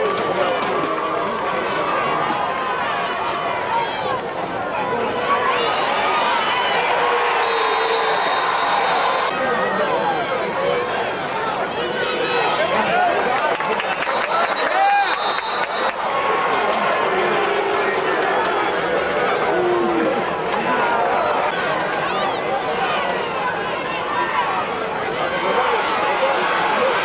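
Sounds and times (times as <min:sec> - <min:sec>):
crowd talking and shouting: 0:00.0 - 0:27.0.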